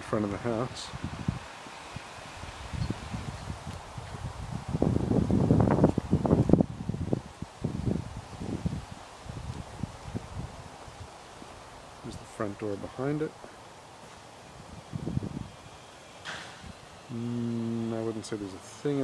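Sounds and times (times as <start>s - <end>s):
gusty wind rumble: 0.7s - 12.3s, 14.5s - 15.6s.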